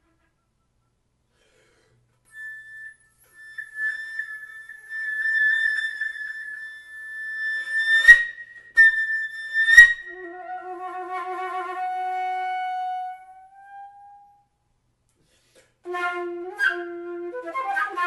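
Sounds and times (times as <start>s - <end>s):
solo flute: 2.3s - 14.6s, 15.8s - 18.0s.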